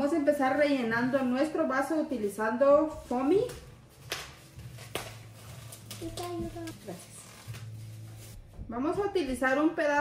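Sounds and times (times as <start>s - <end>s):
plastic wrapping crinkling: 0.0s - 8.6s.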